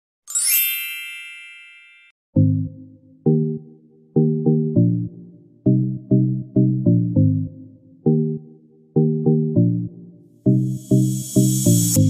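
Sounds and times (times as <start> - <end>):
bright high chime: 0.3 - 2.2.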